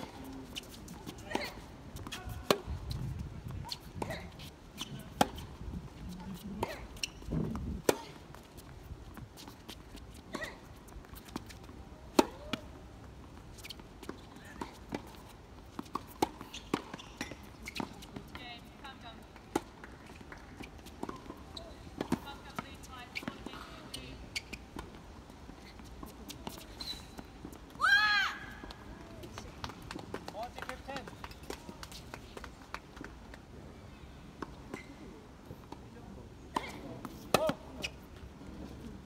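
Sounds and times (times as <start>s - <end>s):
tennis ball bouncing: 0.0s - 3.0s, 3.6s - 9.8s, 10.8s - 12.8s, 13.6s - 18.4s, 36.5s - 38.0s
shoes scuffing on court: 0.0s - 18.4s
tennis ball struck by racket: 36.5s - 37.6s.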